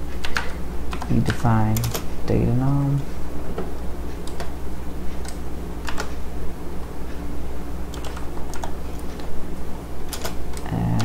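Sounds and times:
steady low hum: 0.0 - 11.0
keyboard keystroke clicks: 10.1 - 11.0.

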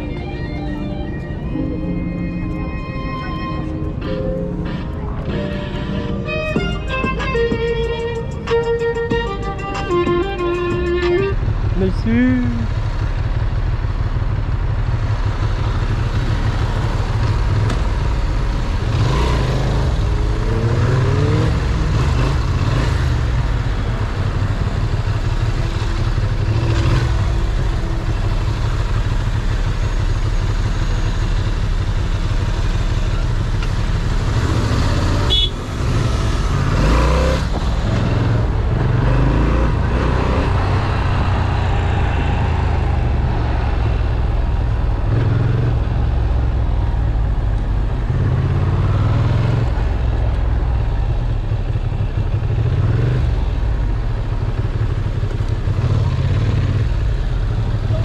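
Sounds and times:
motorcycle engine rumbling and revving: 0.0 - 58.0.

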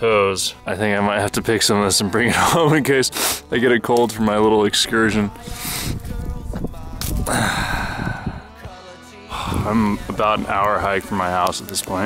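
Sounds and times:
man gasping breath: 5.4 - 6.0, 7.2 - 8.6.

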